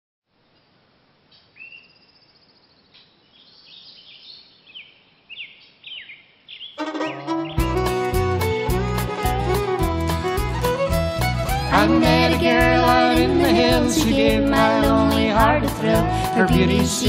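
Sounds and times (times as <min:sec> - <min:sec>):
songbirds chirping: 0:00.4 - 0:07.9
bluegrass band with fiddle and bass: 0:06.8 - 0:17.0.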